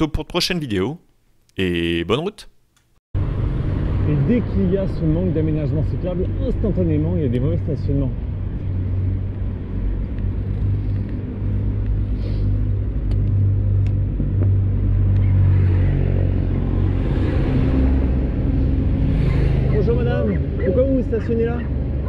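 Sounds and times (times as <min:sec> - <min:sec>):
person speaking: 0:00.0 - 0:02.6
low rumble of road traffic: 0:03.2 - 0:22.0
motor vehicle passing: 0:03.2 - 0:22.0.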